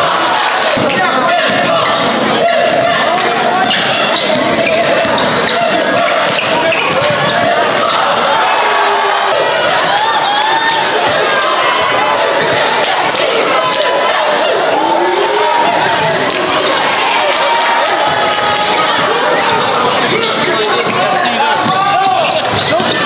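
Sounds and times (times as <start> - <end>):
chatter and calls of people: 0.0 - 23.0
basketball bouncing on gym floor: 21.6 - 23.0.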